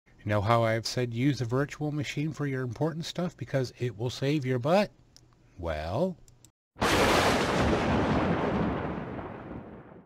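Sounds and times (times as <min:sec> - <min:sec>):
explosion boom: 0:06.8 - 0:10.0.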